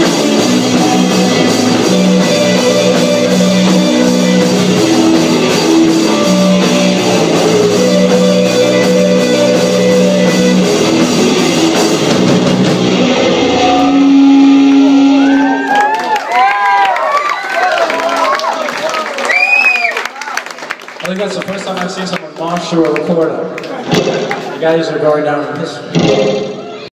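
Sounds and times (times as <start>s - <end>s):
live rock band playing: 0.0s - 16.0s, 23.5s - 24.7s.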